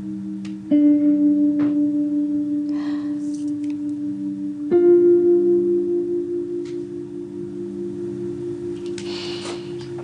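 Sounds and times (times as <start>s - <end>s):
plucked string note ringing: 0.0s - 10.0s.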